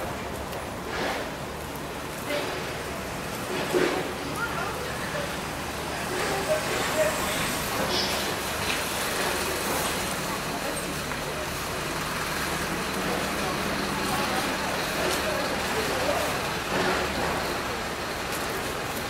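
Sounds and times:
city traffic hum: 0.0 - 19.0
faint voices: 2.1 - 19.0.

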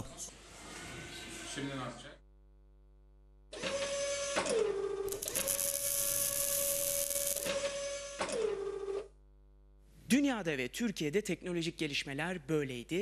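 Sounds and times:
toy robot motors whirring: 5.1 - 7.7.

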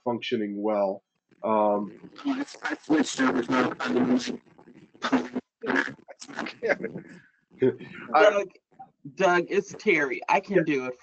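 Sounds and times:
man laughing: 1.5 - 1.8.

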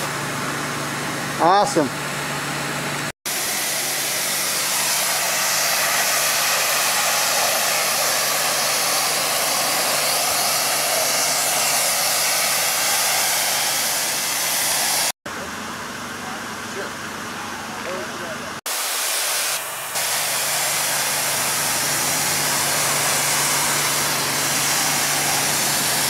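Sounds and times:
pressure washer jet on brick: 3.3 - 15.2, 18.7 - 26.0.

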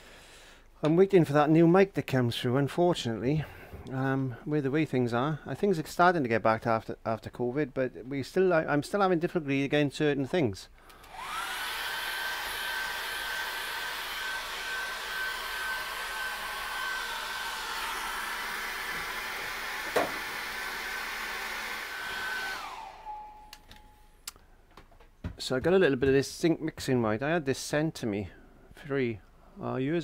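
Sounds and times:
hair dryer blowing with whine: 11.0 - 23.8.

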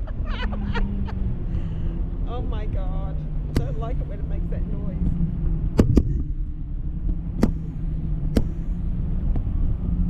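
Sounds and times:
wind rumbling on microphone: 0.0 - 10.0.

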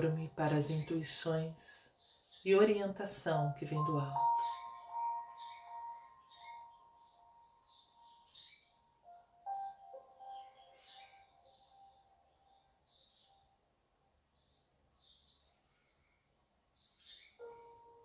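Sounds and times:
bird chirps: 3.6 - 13.6, 14.4 - 18.0.

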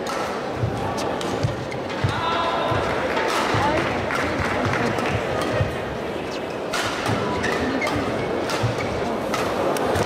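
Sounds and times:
arena crowd murmur: 0.0 - 10.0.

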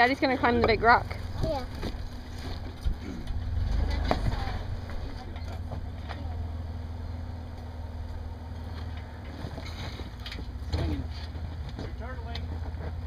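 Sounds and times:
pickup truck engine at low revs: 0.0 - 13.0.

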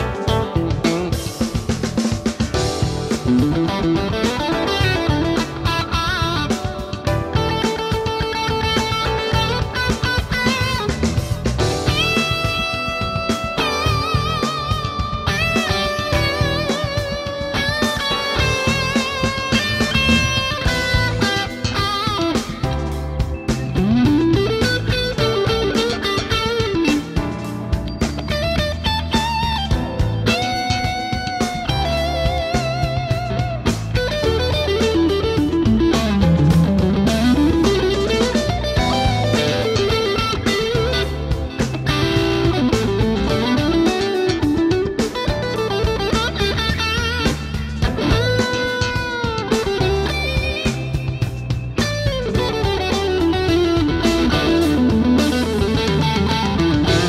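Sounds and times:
overdriven electric guitar lead: 0.0 - 57.0.

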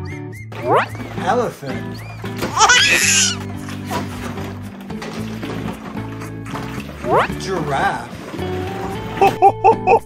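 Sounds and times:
background music with steady tones: 0.0 - 10.0
elephant trumpeting: 2.0 - 3.5.

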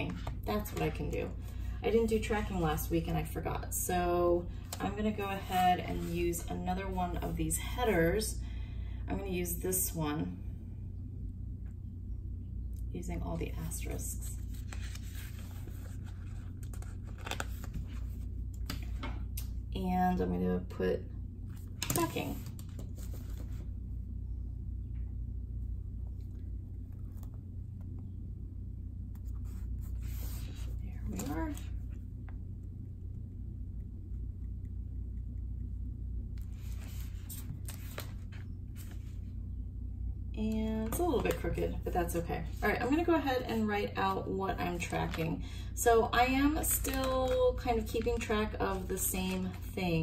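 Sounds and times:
steady low hum: 0.0 - 50.0
crackly paper rustling: 13.6 - 19.0, 21.6 - 23.7, 29.2 - 32.0, 36.4 - 39.3, 46.4 - 49.8.

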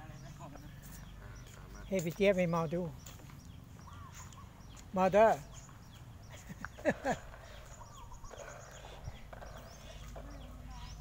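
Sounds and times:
small birds chirping: 0.0 - 11.0
faint background voices: 7.2 - 11.0.

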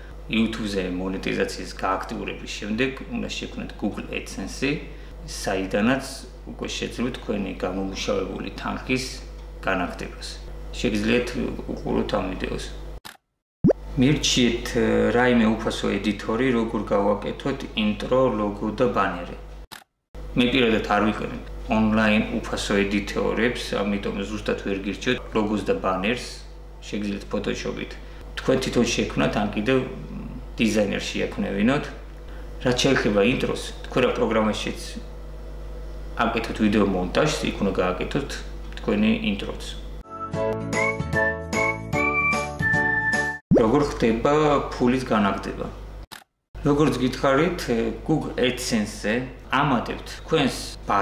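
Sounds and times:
man speaking: 0.3 - 12.8, 20.4 - 32.0, 32.6 - 35.1, 36.2 - 39.8, 43.5 - 45.8, 46.6 - 51.0.

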